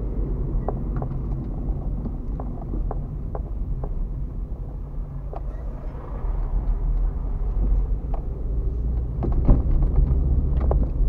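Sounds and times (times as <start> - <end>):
car engine and tyres rumbling: 0.0 - 11.0
faint clicks and rattles: 0.5 - 11.0.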